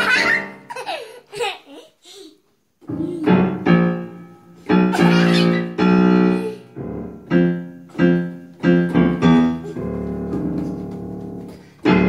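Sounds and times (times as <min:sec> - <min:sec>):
child laughing: 0:00.0 - 0:03.4, 0:04.9 - 0:06.6.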